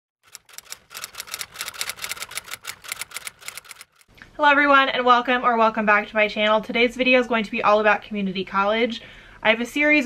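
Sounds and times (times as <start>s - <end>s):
keyboard typing clicks: 0.2s - 4.1s.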